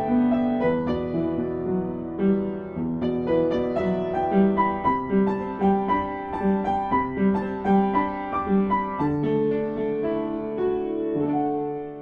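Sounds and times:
soft solo piano: 0.0s - 12.0s.

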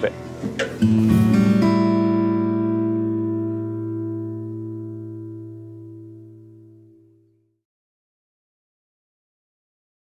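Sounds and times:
music ending on held chord: 0.8s - 7.0s.

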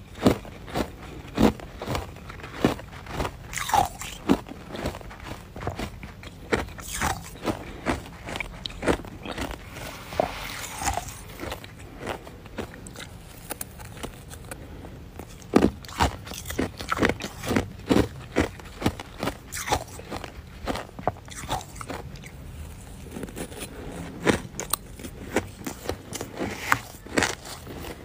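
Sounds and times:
frost being chewed crunching: 0.0s - 28.0s.

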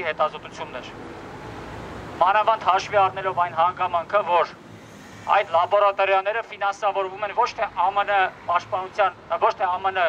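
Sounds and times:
man speaking through a megaphone: 0.0s - 1.0s, 2.2s - 4.6s, 5.3s - 10.0s.

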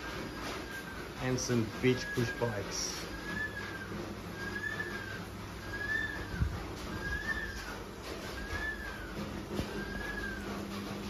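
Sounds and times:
bird whistling single note: 3.2s - 6.4s.

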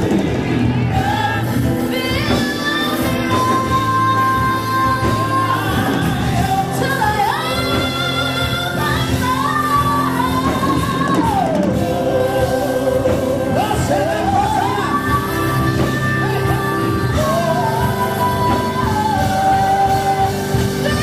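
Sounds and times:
band accompaniment: 0.0s - 21.0s.

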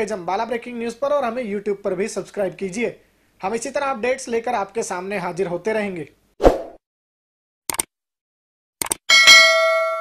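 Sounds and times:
bright bell ding: 9.1s - 10.0s.

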